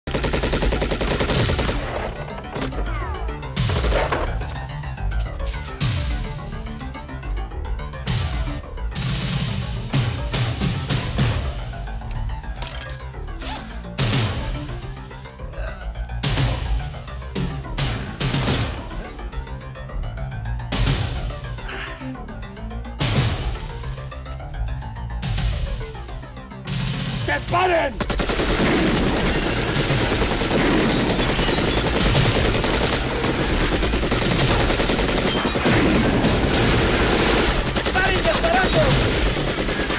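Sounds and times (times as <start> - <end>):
rapid automatic gunfire: 0.0 - 2.1, 28.0 - 39.9.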